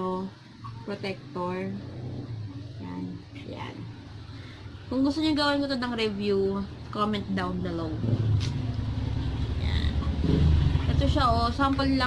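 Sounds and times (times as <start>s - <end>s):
vehicle engine rumbling: 0.4s - 12.0s.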